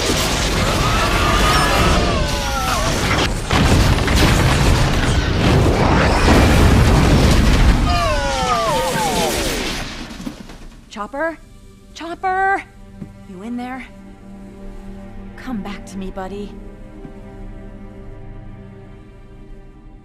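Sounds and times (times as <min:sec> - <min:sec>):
heavy explosion: 0:00.0 - 0:10.3
crackling electrical discharge: 0:00.0 - 0:10.7
falling whines: 0:00.3 - 0:03.3.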